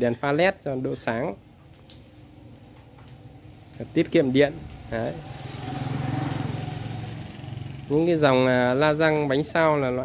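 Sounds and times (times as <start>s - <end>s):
motorbike engine passing: 2.1s - 10.0s.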